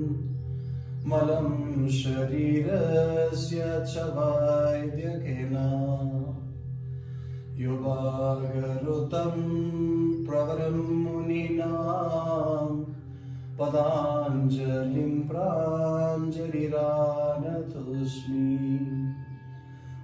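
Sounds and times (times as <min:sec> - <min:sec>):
slow mantra chanting: 0:00.0 - 0:20.0
steady low drone: 0:00.0 - 0:20.0.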